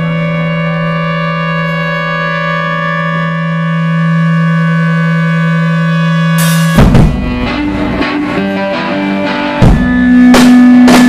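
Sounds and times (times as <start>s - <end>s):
band holding sustained chord: 0.0s - 11.0s.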